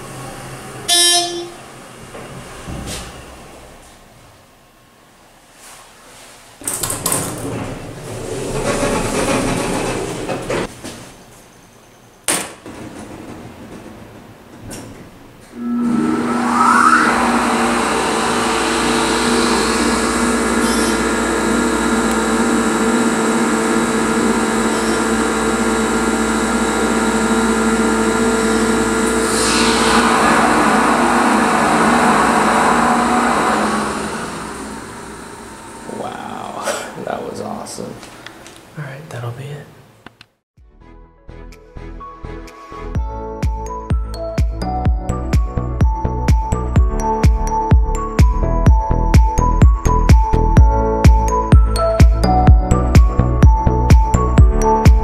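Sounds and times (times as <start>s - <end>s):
elevator pump motor humming: 6.9s - 10.7s, 15.4s - 36.6s.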